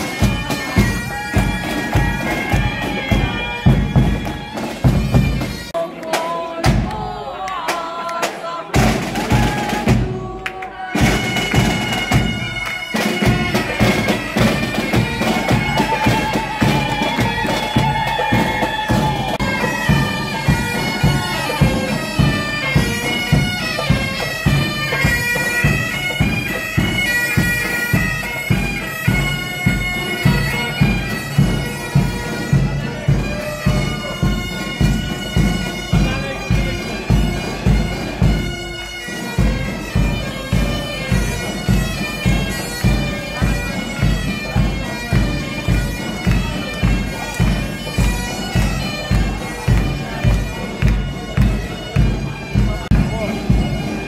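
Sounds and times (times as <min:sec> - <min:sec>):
bagpipes playing melody: 0:00.0 - 0:05.8, 0:10.9 - 0:54.0
steady drum beat: 0:00.0 - 0:05.8, 0:08.2 - 0:54.0.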